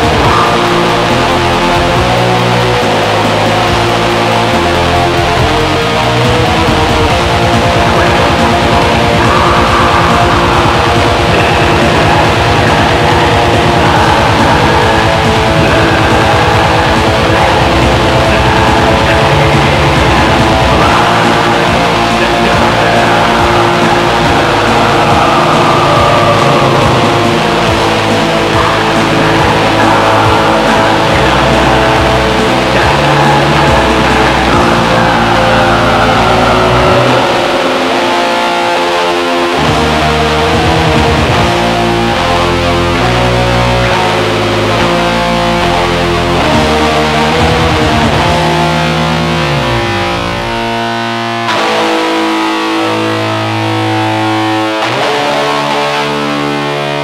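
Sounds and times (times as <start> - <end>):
distorted electric guitars: 0.0 - 57.0
rhythm section: 0.0 - 57.0.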